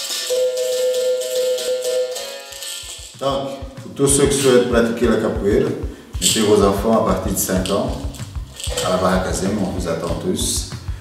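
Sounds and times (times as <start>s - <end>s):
basket rattle shaking: 0.0s - 3.2s, 6.2s - 10.5s.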